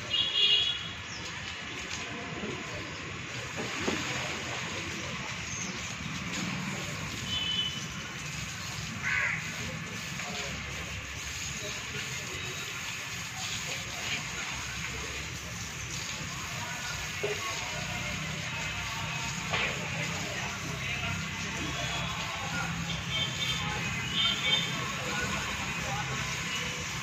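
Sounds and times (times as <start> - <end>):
hose water spraying and splashing: 0.0 - 27.0
crow cawing: 9.0 - 9.6.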